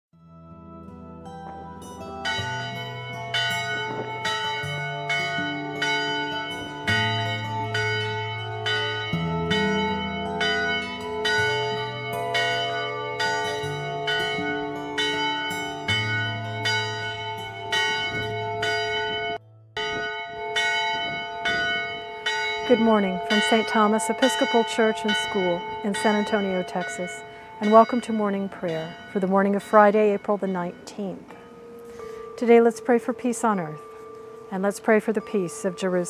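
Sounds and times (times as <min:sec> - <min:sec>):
church bell tolling: 0:01.2 - 0:36.0.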